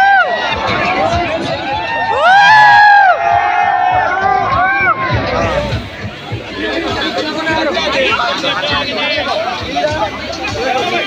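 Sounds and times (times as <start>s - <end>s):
loud drawn-out whoop: 0.0s - 0.4s, 1.7s - 5.1s
crowd cheering and shouting: 0.0s - 11.0s.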